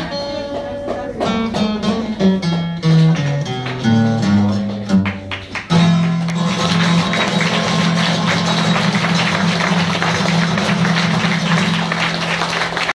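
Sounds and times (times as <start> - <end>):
audience applause: 5.0 - 12.9.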